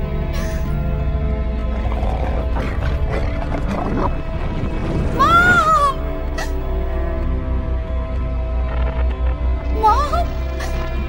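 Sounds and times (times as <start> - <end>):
heavy low rumble: 0.9 - 9.8.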